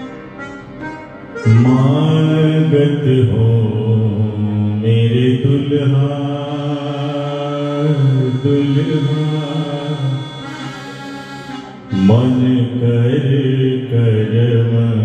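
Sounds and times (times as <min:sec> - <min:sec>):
harmonium: 0:00.0 - 0:15.0
man singing a hymn: 0:01.4 - 0:10.9, 0:11.9 - 0:15.0.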